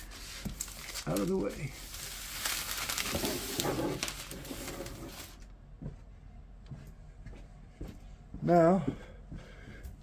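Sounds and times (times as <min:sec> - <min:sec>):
wax paper rustling and crinkling: 0:00.0 - 0:05.4.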